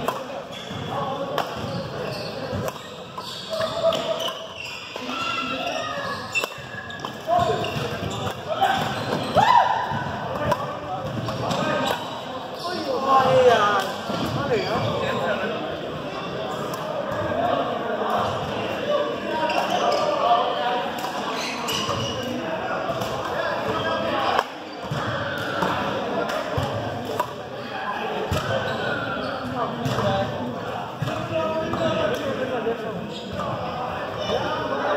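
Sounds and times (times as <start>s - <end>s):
voices and chatter: 0.0s - 34.9s.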